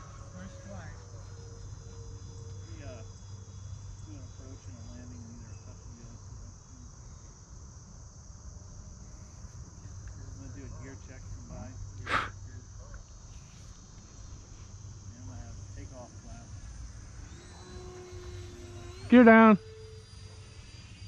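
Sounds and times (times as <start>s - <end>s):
crickets chirring: 0.0s - 21.0s
low steady hum: 0.0s - 21.0s.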